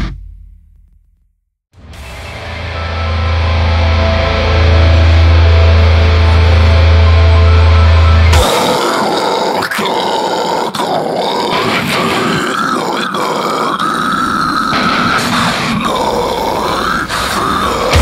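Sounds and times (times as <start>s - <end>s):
heavy metal band playing: 1.8s - 18.0s
guttural growled vocal: 8.3s - 18.0s.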